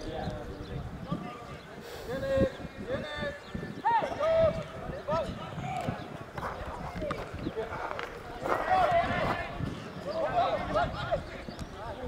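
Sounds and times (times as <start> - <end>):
voices calling out: 0.0 - 12.0.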